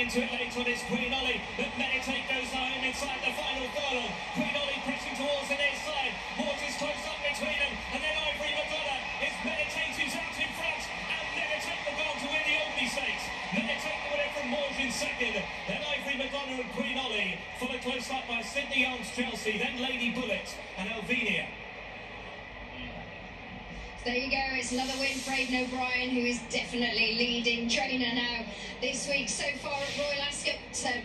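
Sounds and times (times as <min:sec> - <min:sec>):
man commentating horse race: 0:00.0 - 0:21.6.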